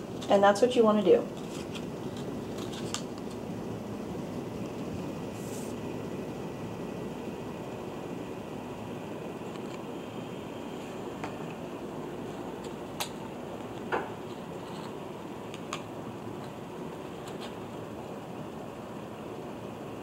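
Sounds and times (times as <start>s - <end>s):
low room hum: 0.0s - 20.0s
paper rustle: 1.3s - 3.4s.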